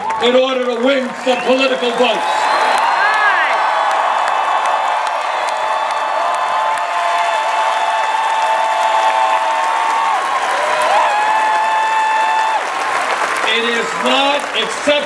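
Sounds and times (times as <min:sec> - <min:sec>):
crowd cheering and whooping: 0:00.0 - 0:15.0
crowd clapping: 0:00.0 - 0:15.0.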